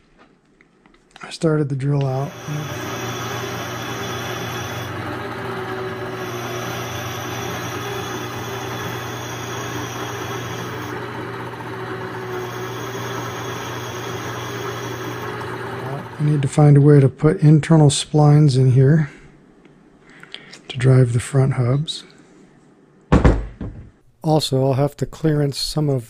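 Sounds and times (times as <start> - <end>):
drill boring metal hiss: 2.2 - 5.0, 5.8 - 11.0, 12.2 - 16.3
metal lathe humming: 2.2 - 16.5.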